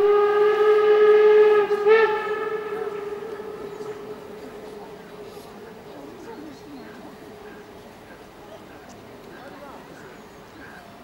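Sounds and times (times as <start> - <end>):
steam locomotive whistle: 0.0 - 5.7.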